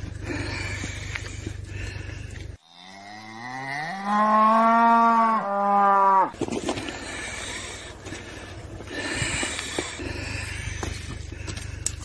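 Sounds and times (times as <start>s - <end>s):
low background hum: 0.0s - 2.6s, 6.3s - 12.0s
cow mooing: 2.6s - 6.4s.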